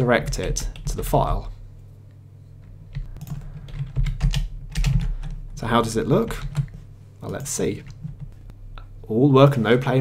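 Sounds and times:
low steady hum: 0:00.0 - 0:10.0
computer keyboard typing: 0:02.9 - 0:05.4.

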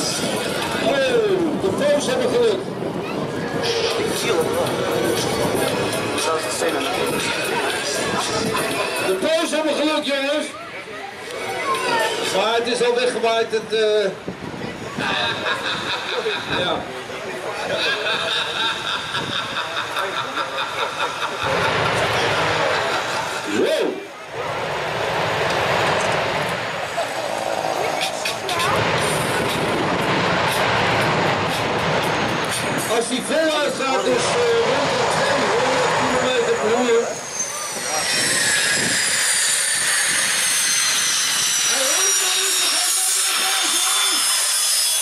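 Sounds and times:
deep rush of noise: 0:00.0 - 0:45.0
jet engines whining: 0:00.0 - 0:45.0.

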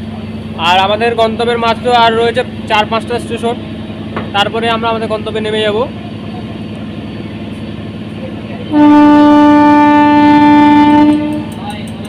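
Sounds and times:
train horn blast: 0:08.7 - 0:11.7.

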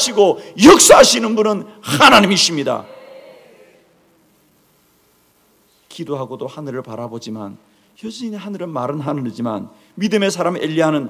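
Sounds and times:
man speaking: 0:00.0 - 0:02.9.

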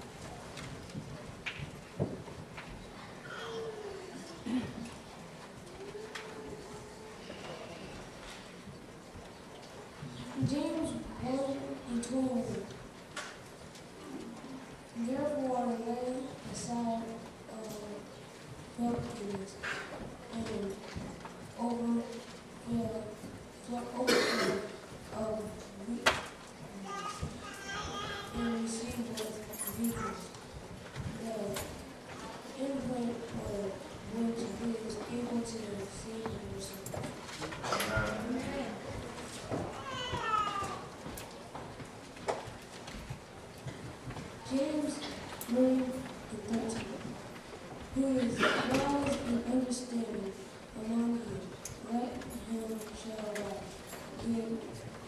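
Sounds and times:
faint hummed murmur: 0:00.0 - 0:55.0
microphone hiss: 0:00.0 - 0:55.0.

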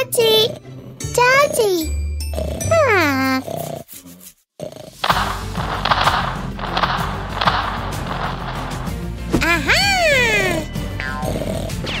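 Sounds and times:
background music with low bass: 0:05.0 - 0:12.0.

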